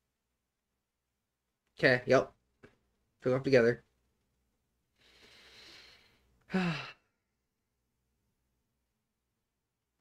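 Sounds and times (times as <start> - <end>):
man sighing: 5.2 - 7.2.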